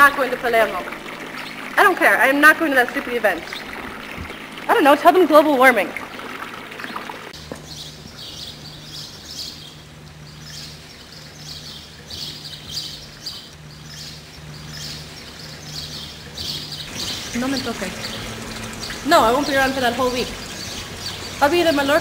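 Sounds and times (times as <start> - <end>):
small birds chirping: 0.0 - 5.9, 6.8 - 22.0
fountain trickling: 0.0 - 22.0.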